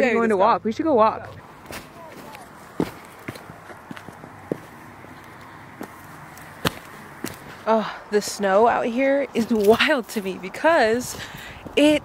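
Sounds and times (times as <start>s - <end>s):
outdoor background hiss: 0.0s - 12.0s
footsteps on dry leaves and rock: 1.4s - 7.6s.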